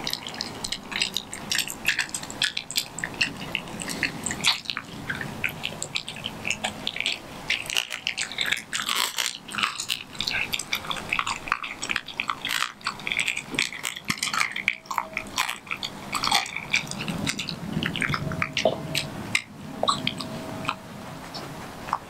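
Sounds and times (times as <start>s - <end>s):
dog chewing raw meat: 0.0s - 22.0s.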